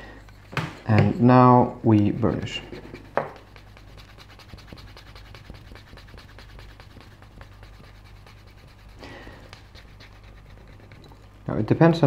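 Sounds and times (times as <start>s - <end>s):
burnisher rubbing leather edge: 0.0s - 11.2s.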